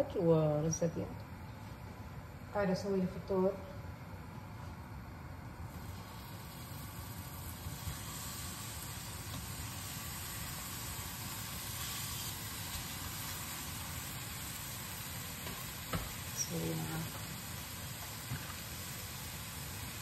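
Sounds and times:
tomato slices sizzling in a pan: 5.7 - 20.0.

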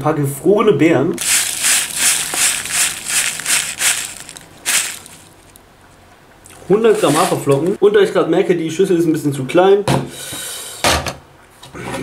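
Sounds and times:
oats pouring into plastic bowl: 1.2 - 5.6, 6.8 - 7.7.

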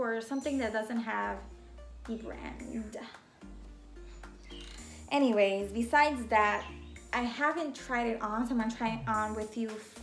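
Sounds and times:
calm electronic music: 0.5 - 10.0.

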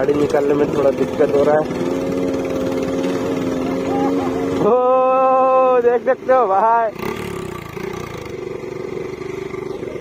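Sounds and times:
motorcycle engine droning: 0.0 - 10.0.

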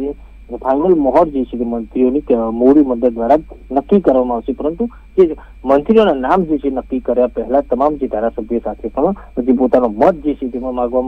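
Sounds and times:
faint steady high tone: 0.0 - 11.0
news reporter talking: 0.0 - 11.0.

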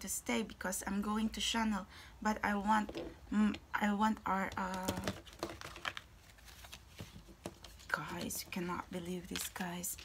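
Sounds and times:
cards clicking and tapping: 4.5 - 8.4.

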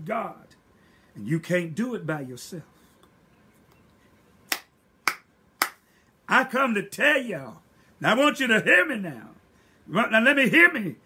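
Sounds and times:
finger snaps: 4.5 - 5.8.

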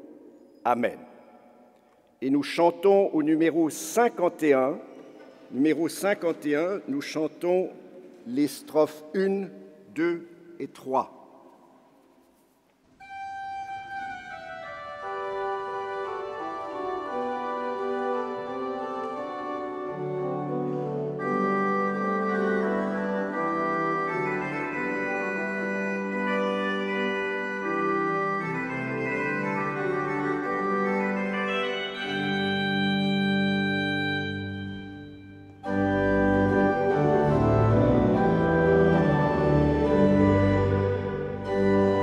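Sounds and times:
pipe organ playing hymn chords: 13.0 - 42.0.

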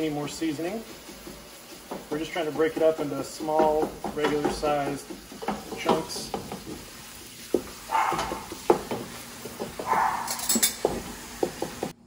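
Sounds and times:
wooden spoon scraping frying pan: 0.0 - 12.0.

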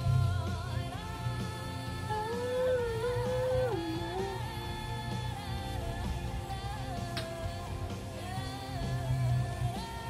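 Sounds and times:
pop ballad backing music: 0.0 - 10.0
man humming a held note: 2.0 - 5.0.

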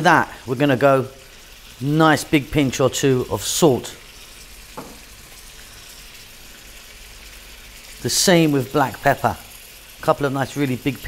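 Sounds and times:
vegetables sizzling in oil: 0.0 - 11.0.

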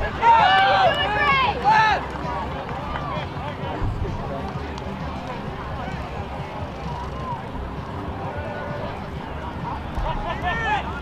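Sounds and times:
people shouting: 0.0 - 2.0.

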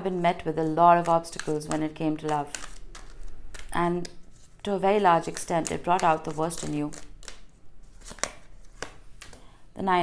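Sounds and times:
cards rustling: 0.4 - 9.5.

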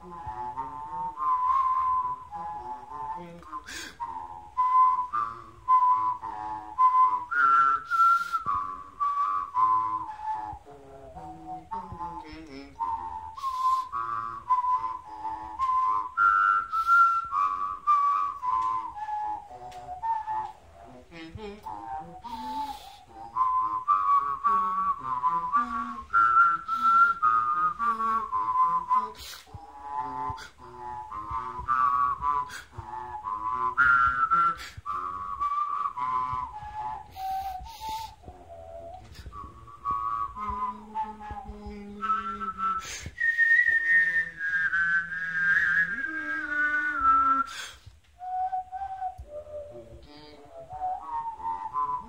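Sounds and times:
low voice humming along: 0.0 - 7.8, 9.6 - 15.9, 19.3 - 47.7, 49.1 - 52.0
person whistling a melody: 0.0 - 52.0.

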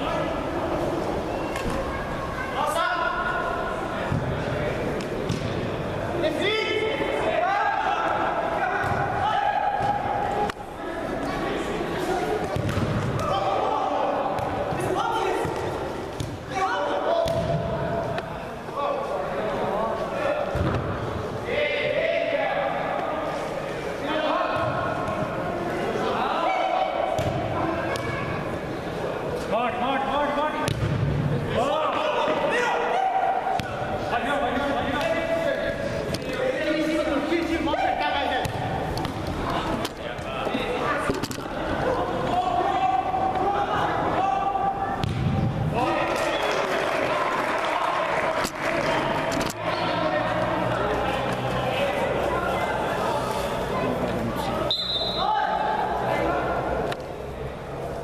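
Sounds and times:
players shouting: 5.8 - 19.1, 21.3 - 30.6, 31.4 - 56.8
ball being kicked: 30.6 - 31.0, 45.0 - 45.5.

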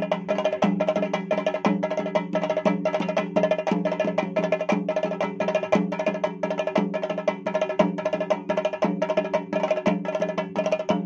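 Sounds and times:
fast ensemble drumming: 0.0 - 11.0.

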